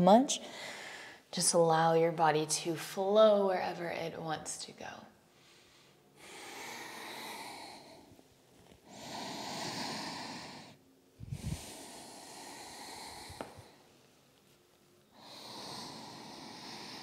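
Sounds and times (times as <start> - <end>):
woman breathing deeply: 0.4 - 1.3, 5.3 - 14.0, 15.1 - 17.0.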